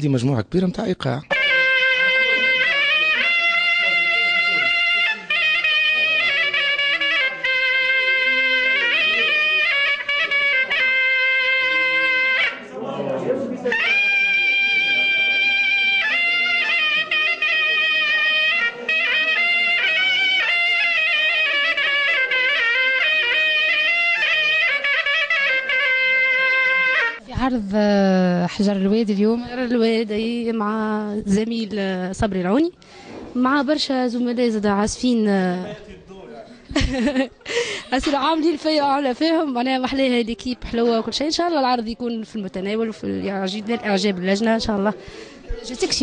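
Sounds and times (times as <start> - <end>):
shawm playing folk melody: 1.3 - 12.7, 13.6 - 27.3.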